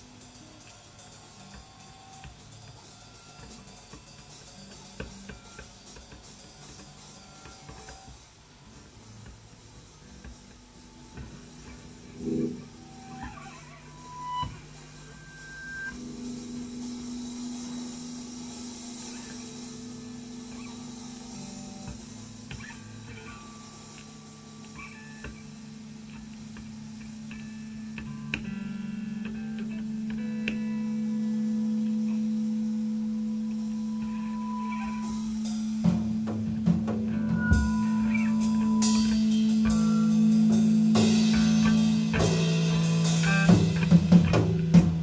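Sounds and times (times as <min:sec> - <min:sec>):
spacey electric guitar music: 0:00.0 - 0:45.0.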